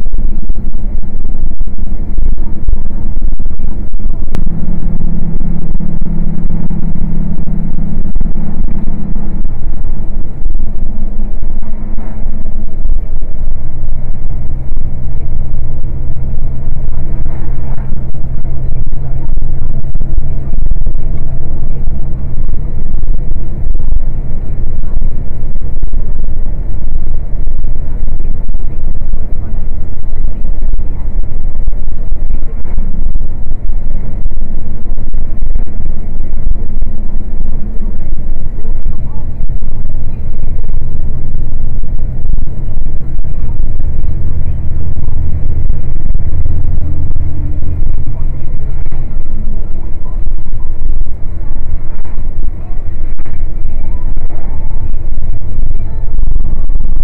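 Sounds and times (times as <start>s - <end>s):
truck engine drone: 0.0s - 57.0s.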